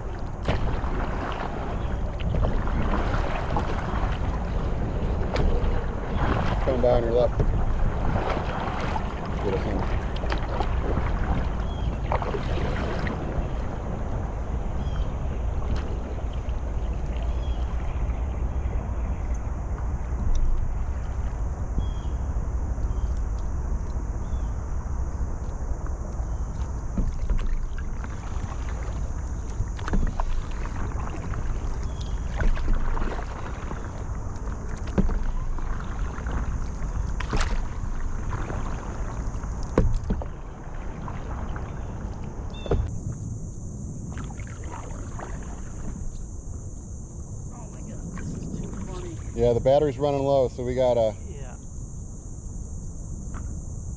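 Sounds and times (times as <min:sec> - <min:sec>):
paddle splashing in water: 0:00.0 - 0:23.2, 0:25.2 - 0:51.2
low wind rumble: 0:00.0 - 0:53.9.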